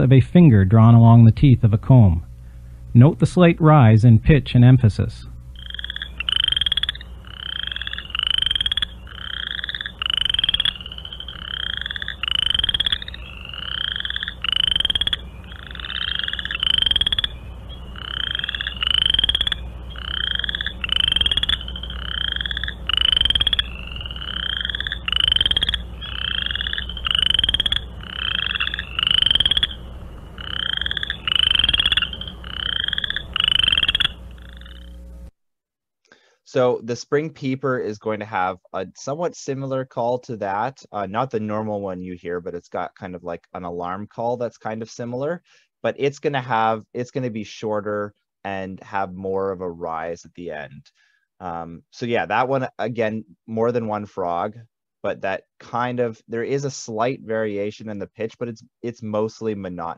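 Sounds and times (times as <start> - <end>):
steady low hum: 0.0 - 35.4
frogs calling with rising trills: 5.4 - 35.3.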